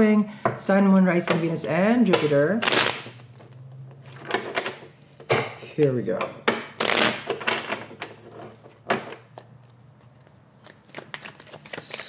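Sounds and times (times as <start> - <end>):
cards being shuffled: 2.6 - 4.5, 6.8 - 12.0.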